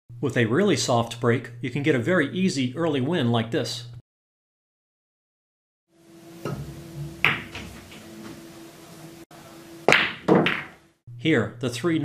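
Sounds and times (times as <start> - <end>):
cue striking ball: 6.4 - 8.5, 9.8 - 10.8
pool balls clicking: 6.4 - 8.5, 9.8 - 10.9.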